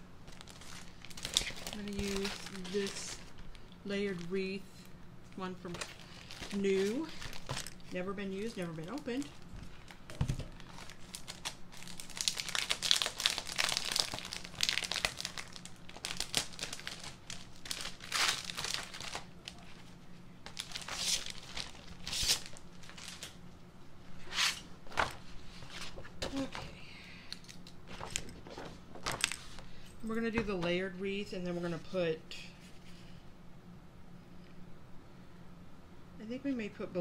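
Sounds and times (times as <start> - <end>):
packaging crinkling: 0.2 - 4.3, 5.6 - 23.4.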